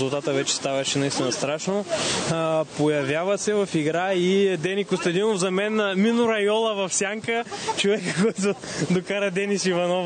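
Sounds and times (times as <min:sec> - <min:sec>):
man commentating: 0:00.0 - 0:10.0.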